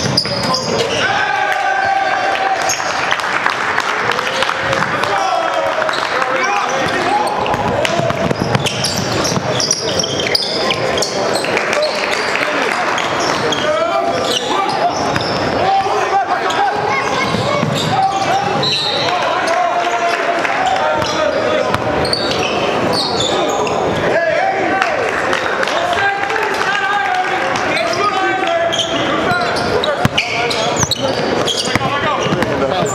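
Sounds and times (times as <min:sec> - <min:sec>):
voices in large gym: 0:00.0 - 0:32.9.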